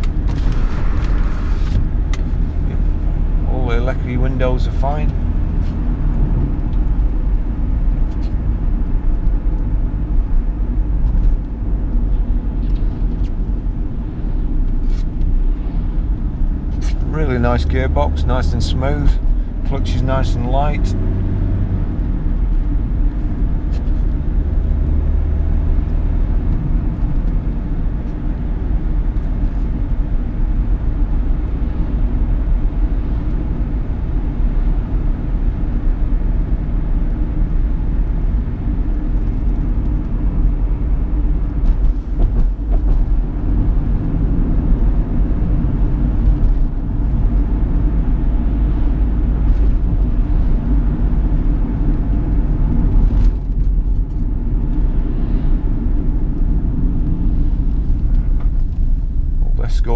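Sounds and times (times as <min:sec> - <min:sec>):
car engine drone: 0:00.0 - 0:59.9
tyre and road rumble: 0:00.0 - 0:59.9.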